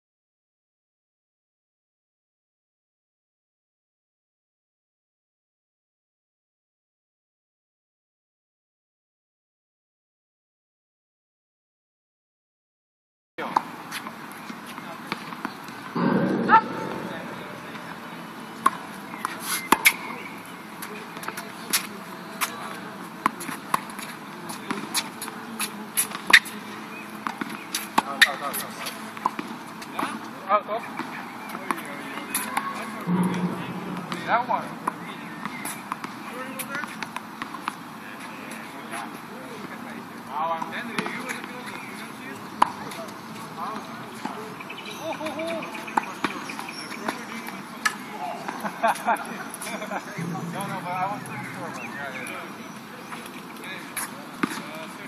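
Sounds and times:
tennis balls struck and bouncing: 0:13.4 - 0:30.2, 0:31.0 - 0:37.8, 0:40.9 - 0:44.4, 0:45.2 - 0:55.0
indistinct voices: 0:16.0 - 0:19.0, 0:32.3 - 0:35.6, 0:49.6 - 0:54.1.

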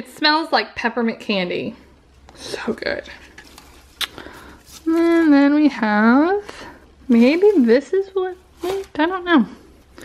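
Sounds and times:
shredded paper rustling: 0:07.1 - 0:09.2.

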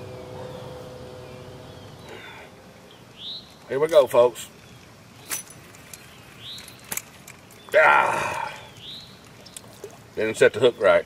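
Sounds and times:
bird chirp: 0:00.0 - 0:11.0
man's breathy exclamation: 0:07.8 - 0:08.7.

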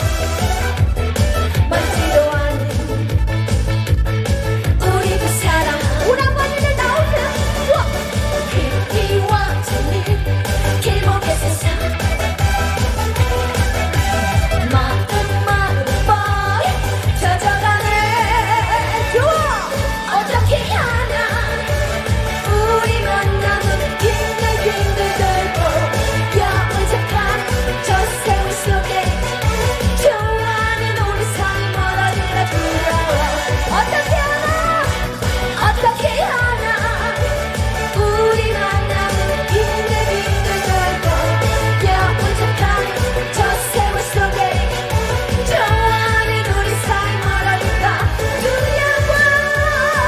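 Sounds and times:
woman singing into a microphone: 0:00.0 - 0:04.0, 0:04.6 - 0:50.0
amplified pop backing music: 0:00.0 - 0:50.0.

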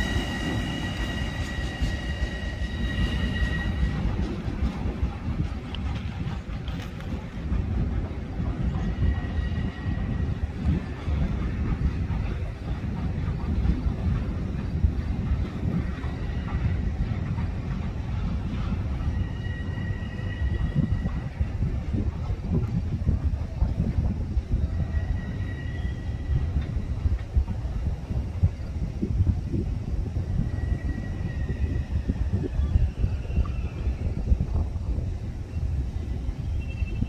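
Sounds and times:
high squeal: 0:00.0 - 0:04.3, 0:19.0 - 0:21.5, 0:24.7 - 0:26.6, 0:30.3 - 0:34.3, 0:35.5 - 0:37.0
train wheels rumbling on track: 0:00.0 - 0:37.0.

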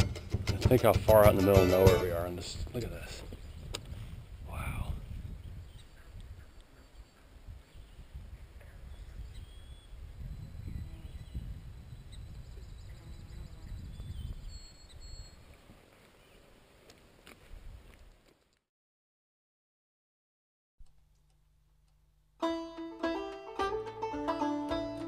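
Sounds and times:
wind rumble on microphone: 0:02.1 - 0:15.8, 0:17.4 - 0:18.1
bird calls: 0:05.6 - 0:16.5.

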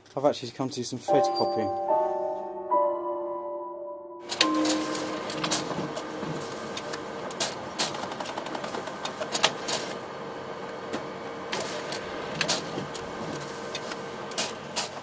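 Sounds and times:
photocopier mechanism clicks and clunks: 0:04.3 - 0:09.9
photocopier hum: 0:04.3 - 0:14.8.

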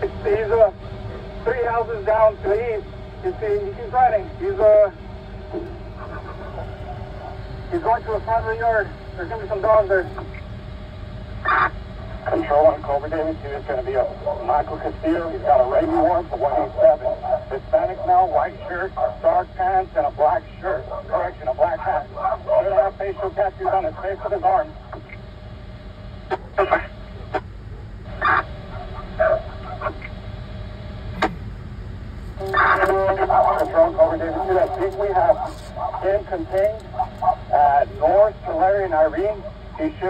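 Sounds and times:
low background rumble: 0:00.0 - 0:40.0
dog barking: 0:27.7 - 0:30.1.

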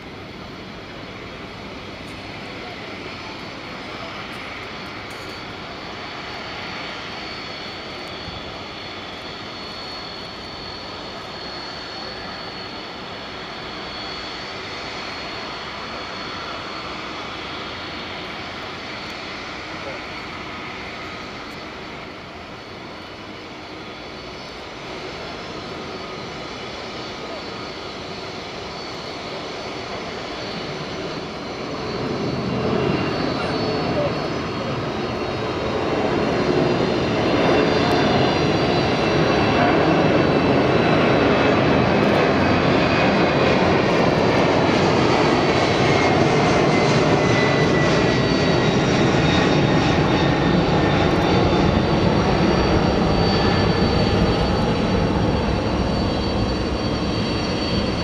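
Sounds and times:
jet engines whining and rumbling: 0:00.0 - 0:58.0.

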